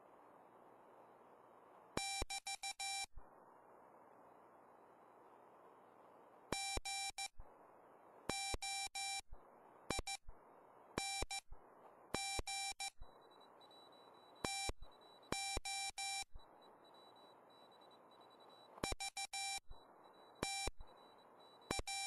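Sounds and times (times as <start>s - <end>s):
receiver hiss: 0.0s - 22.0s
morse code beeps: 12.2s - 22.0s.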